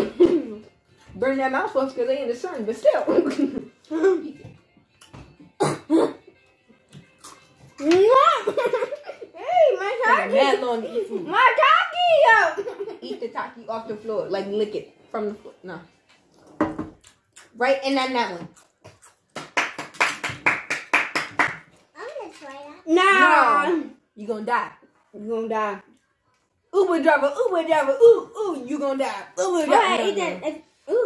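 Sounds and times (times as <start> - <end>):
child coughing: 5.6 - 6.3
rapid hand clapping: 19.3 - 21.8.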